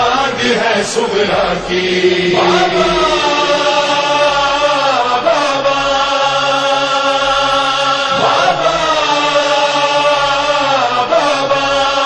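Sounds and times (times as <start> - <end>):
voices chanting a lament: 0.0 - 12.0.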